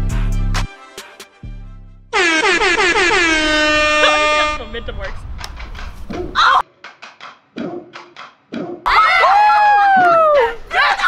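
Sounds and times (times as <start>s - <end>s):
loud horn blast: 2.1s - 5.0s.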